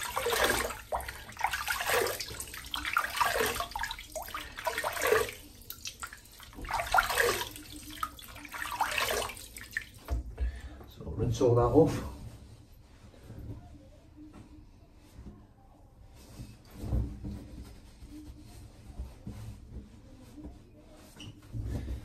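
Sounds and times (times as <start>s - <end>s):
towel rubbing on wet head: 0.0s - 10.1s, 16.4s - 21.4s.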